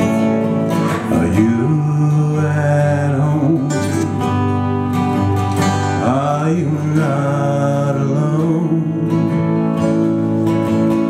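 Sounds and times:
strummed acoustic guitar: 0.0s - 11.0s
man singing drawn-out notes: 1.1s - 4.2s, 6.0s - 9.6s.

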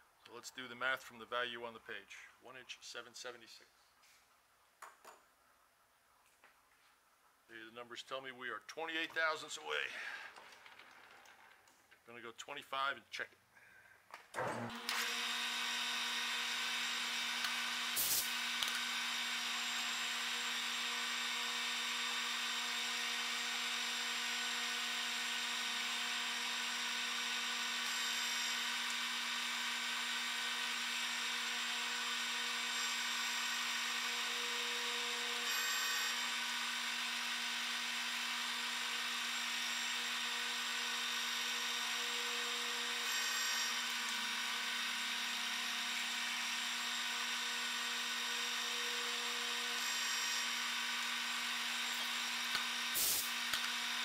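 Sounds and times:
metal lathe whining: 14.7s - 54.0s.

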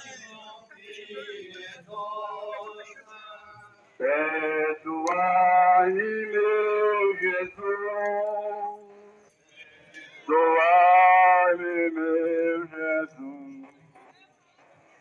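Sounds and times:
men singing a hymn: 0.0s - 9.2s, 10.3s - 13.7s.

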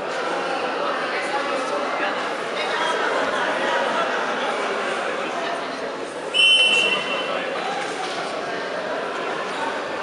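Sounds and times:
crowd chatter: 0.0s - 10.0s
referee's whistle blast: 6.3s - 7.4s.

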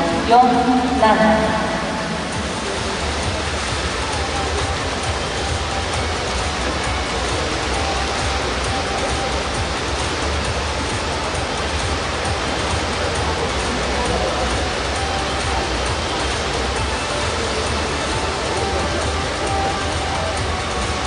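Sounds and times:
swimming pool hall noise: 0.0s - 21.0s.

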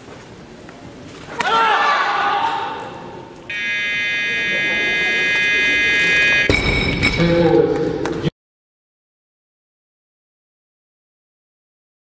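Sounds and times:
electronic buzzer: 3.5s - 6.5s
barbell dropped on platform: 6.5s - 7.2s.

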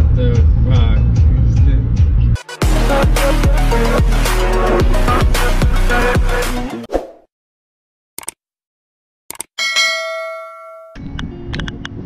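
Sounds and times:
bell ding: 9.6s - 11.0s.

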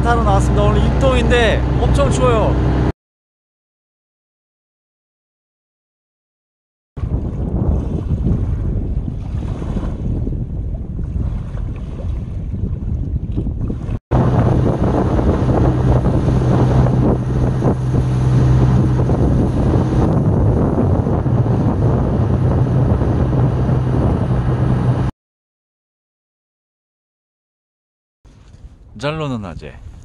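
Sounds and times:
boat engine humming: 0.0s - 2.9s, 13.2s - 25.1s
wind buffeting microphone: 7.0s - 25.1s.

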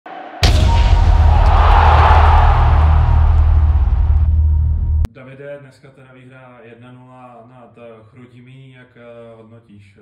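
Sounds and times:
rushing swell of impact hit: 0.4s - 5.1s
deep low rumble: 0.5s - 5.1s.

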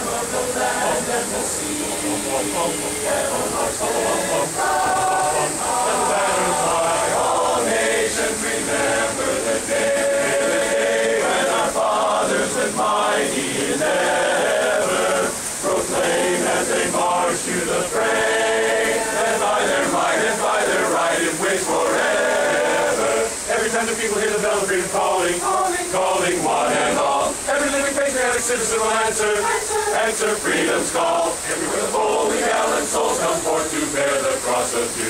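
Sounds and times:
men's chorus singing a cappella: 0.0s - 35.0s.

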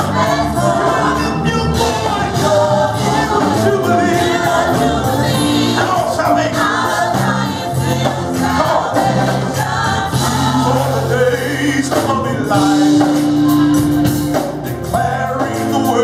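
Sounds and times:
gospel choir singing: 0.0s - 16.0s
live band backing: 0.0s - 16.0s
low bass notes: 0.0s - 16.0s.

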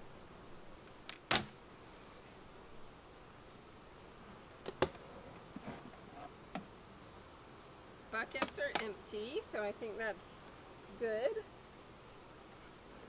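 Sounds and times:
wooden hive boxes knocking: 8.3s - 9.0s.

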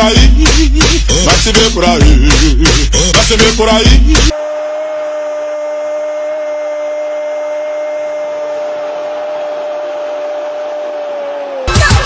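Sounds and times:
steady whine: 4.2s - 12.0s.

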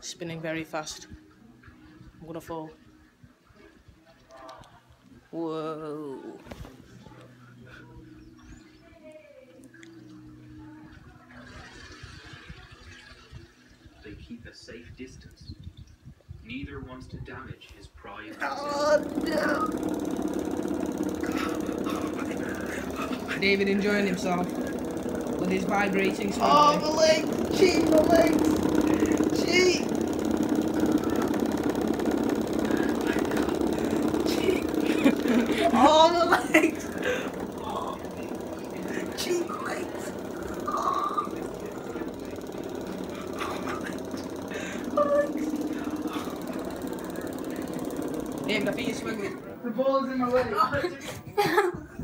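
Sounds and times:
hoverboard buzzing rattle: 11.2s - 13.9s, 18.3s - 52.0s.

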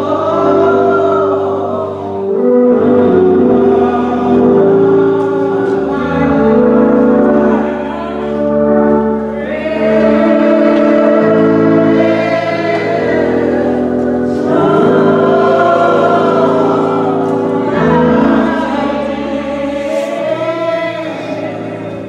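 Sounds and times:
gospel singing by several voices: 0.0s - 22.0s.

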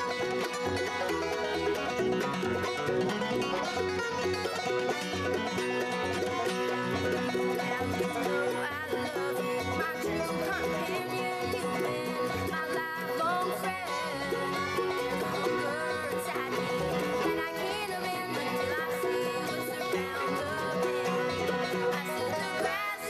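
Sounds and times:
bluegrass band playing: 0.0s - 23.0s.

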